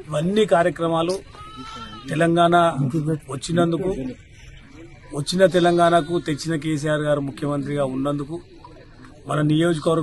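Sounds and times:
man speaking: 0:01.9 - 0:04.2, 0:05.1 - 0:08.5.

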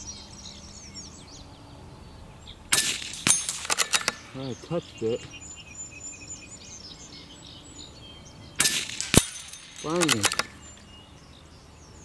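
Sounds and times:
faint birdsong: 0:00.0 - 0:12.0
rifle shot: 0:02.7 - 0:04.3, 0:08.6 - 0:10.6.

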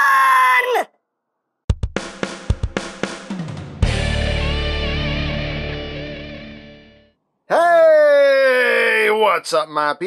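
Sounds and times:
high drawn-out yell: 0:00.0 - 0:01.0, 0:07.5 - 0:09.2.

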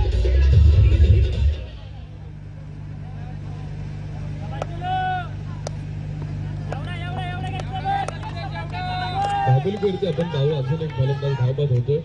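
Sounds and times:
steady low hum: 0:00.0 - 0:12.0
voices shouting across field: 0:06.7 - 0:11.6.

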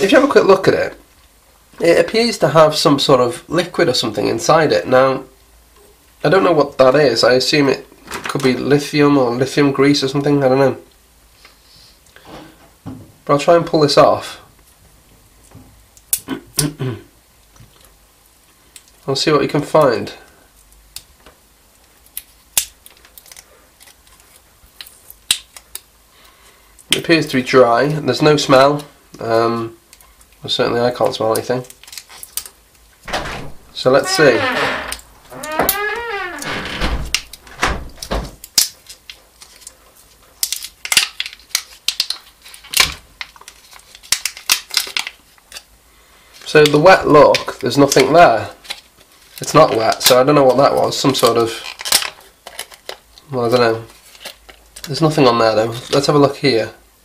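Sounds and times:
plastic wrap clicks and crackles: 0:20.8 - 0:25.9, 0:31.0 - 0:32.8, 0:38.4 - 0:45.7, 0:46.6 - 0:53.3, 0:53.9 - 0:55.0.

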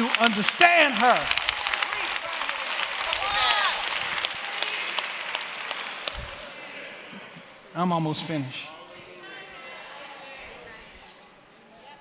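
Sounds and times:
congregation applauding: 0:00.0 - 0:08.5.

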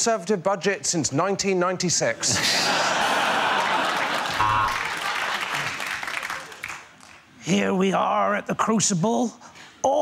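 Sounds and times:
studio audience laughing: 0:02.3 - 0:05.7
audience applauding: 0:03.2 - 0:07.2.

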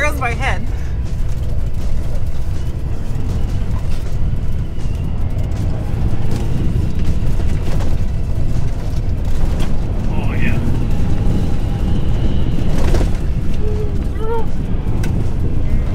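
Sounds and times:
faint music: 0:00.0 - 0:15.9
vehicle driving fast on dirt: 0:00.0 - 0:15.9.

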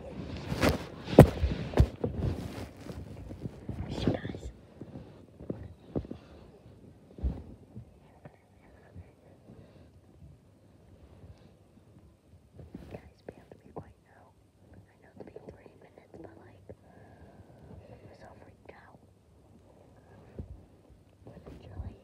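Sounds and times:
person whispering: 0:03.7 - 0:04.6, 0:08.0 - 0:09.4, 0:12.8 - 0:16.8, 0:17.8 - 0:19.0, 0:21.3 - 0:22.0.

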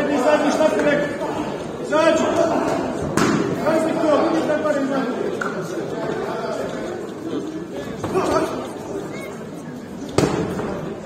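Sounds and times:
voices shouting in echoing hall: 0:00.0 - 0:11.0
strike smack: 0:03.2 - 0:03.5.

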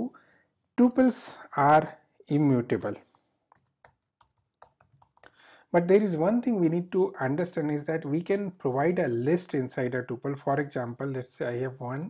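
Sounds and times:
computer keyboard keystrokes: 0:02.7 - 0:05.4.

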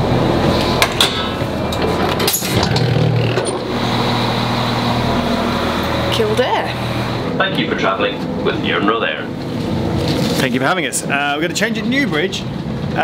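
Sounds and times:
diesel train engine drone: 0:00.0 - 0:13.0.

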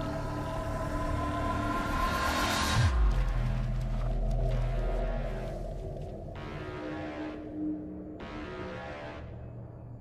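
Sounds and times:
dark tense trailer music: 0:00.0 - 0:10.0.

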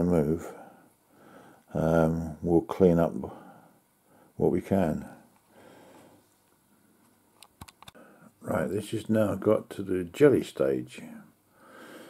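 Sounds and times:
faint soft noise: 0:00.0 - 0:12.0.

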